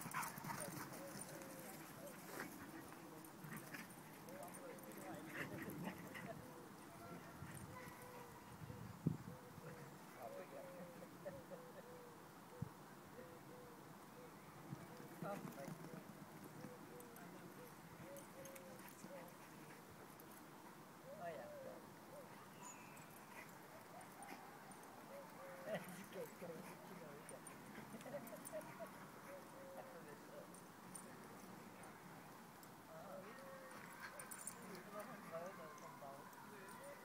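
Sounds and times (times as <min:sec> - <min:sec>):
outdoor background noise: 0:00.0 - 0:37.0.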